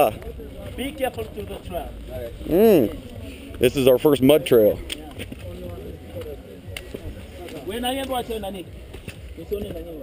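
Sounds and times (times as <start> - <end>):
quiet background talk: 0.0 - 10.0.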